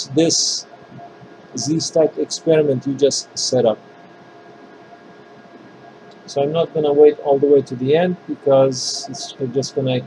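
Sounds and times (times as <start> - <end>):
faint steady hiss: 0.0 - 10.0
light constant hum: 0.0 - 10.0.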